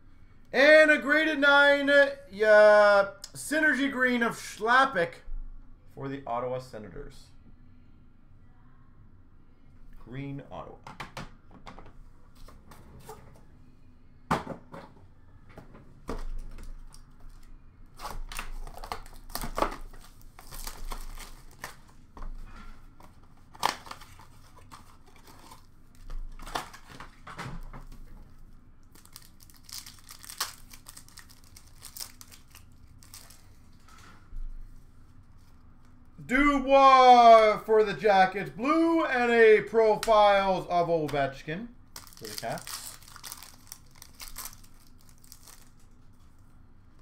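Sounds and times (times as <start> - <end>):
wrappers ripping and crinkling: 16.7 - 22.0, 28.9 - 33.9, 41.9 - 45.9.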